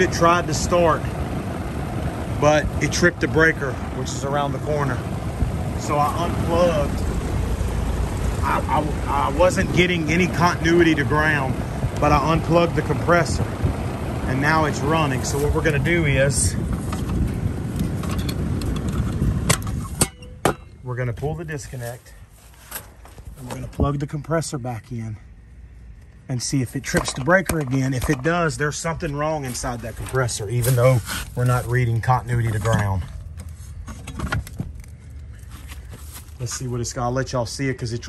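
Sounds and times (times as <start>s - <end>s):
fan motor running: 0.0s - 38.0s.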